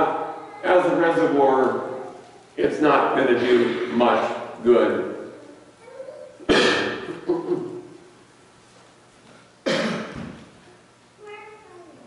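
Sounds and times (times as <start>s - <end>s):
man coughing: 6.5s - 7.8s, 9.7s - 10.2s.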